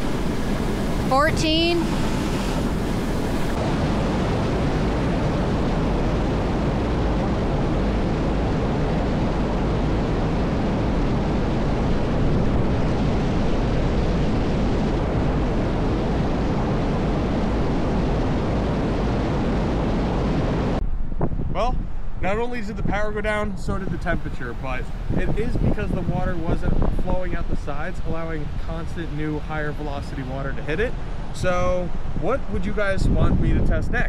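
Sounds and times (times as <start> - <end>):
water rushing and splashing: 0.0 - 20.8, 23.7 - 33.0.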